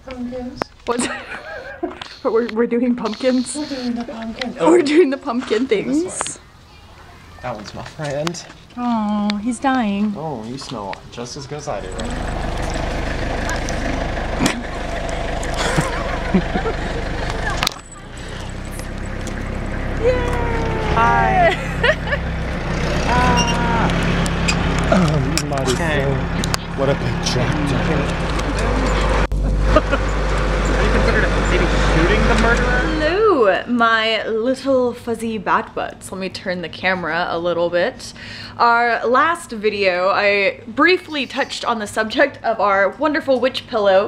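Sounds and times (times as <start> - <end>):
tractor engine humming: 7.5 - 34.2
low outdoor rumble: 7.6 - 44.0
faint voices: 10.5 - 29.5.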